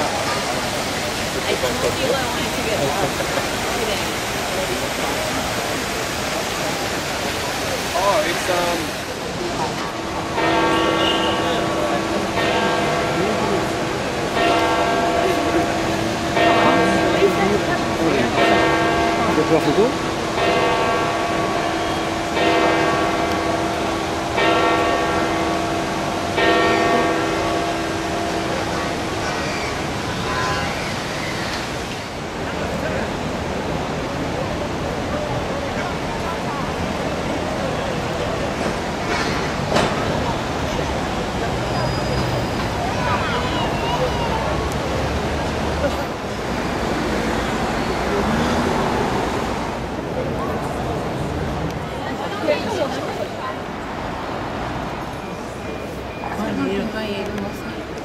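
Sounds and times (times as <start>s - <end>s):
murmur of crowd voices: 0.0s - 58.0s
church bells ringing: 9.6s - 30.6s.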